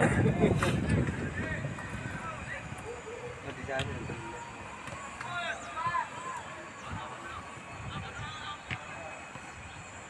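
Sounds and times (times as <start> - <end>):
wind rumble on microphone: 0.0 - 4.2, 6.8 - 10.0
distant players shouting: 1.0 - 9.8.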